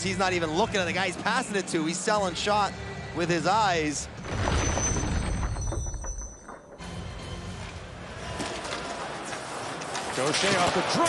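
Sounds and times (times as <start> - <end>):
arena crowd noise: 8.0 - 11.0.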